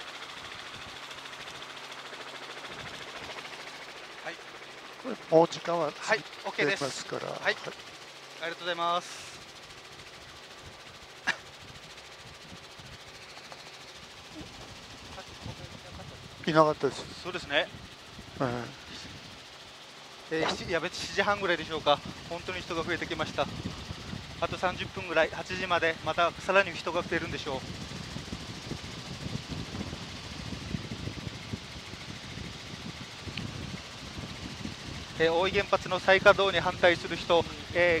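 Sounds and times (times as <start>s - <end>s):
helicopter cabin and rotor noise: 0.0s - 38.0s.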